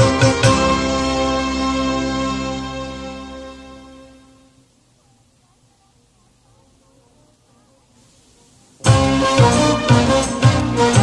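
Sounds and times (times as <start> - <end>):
faint tape hiss: 0.0 - 11.0.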